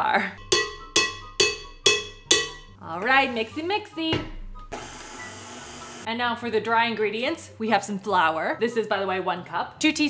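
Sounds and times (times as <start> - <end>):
utensil tapping ceramic bowl rim: 0.4 - 2.8.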